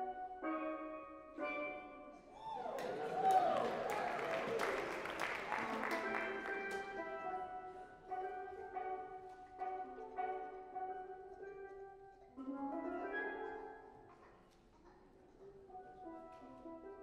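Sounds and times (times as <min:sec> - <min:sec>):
steel pan melody: 0:00.0 - 0:02.3, 0:05.5 - 0:14.0.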